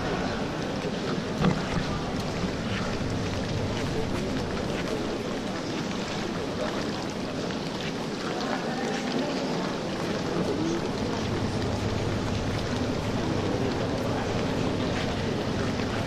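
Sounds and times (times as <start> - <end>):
swimmers splashing in echoing pool: 0.0 - 16.0.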